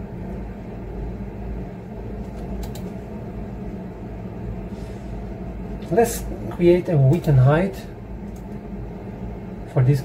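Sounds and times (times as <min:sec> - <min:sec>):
low mechanical hum: 0:00.0 - 0:10.0
man speaking: 0:05.8 - 0:07.9, 0:09.7 - 0:10.0.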